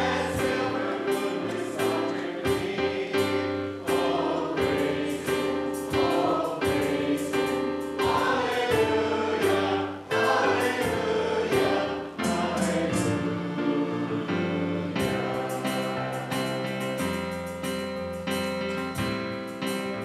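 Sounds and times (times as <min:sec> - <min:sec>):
choir singing a hymn: 0:00.0 - 0:18.0
instrumental accompaniment chords: 0:00.0 - 0:20.0.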